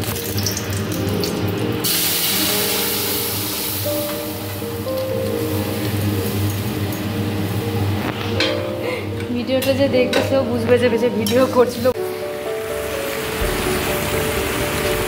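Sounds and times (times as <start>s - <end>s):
loud hissing sizzle in hot oil: 0.0s - 8.0s, 12.0s - 15.0s
background music with held tones: 0.0s - 15.0s.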